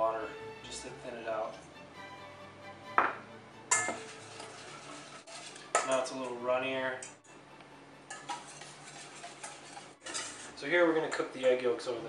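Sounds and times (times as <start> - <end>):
whisk scraping metal bowl: 3.7 - 6.3, 8.1 - 11.2.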